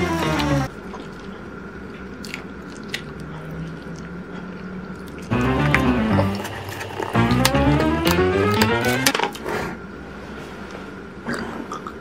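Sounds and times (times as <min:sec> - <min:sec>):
person chewing noodles: 0:00.4 - 0:08.7
wet mouth clicks and smacks: 0:02.2 - 0:05.2.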